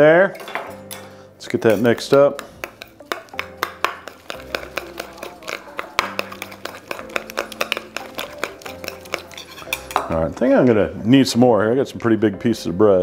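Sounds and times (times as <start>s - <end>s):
metal spoon tapping bowl: 0.4s - 10.5s.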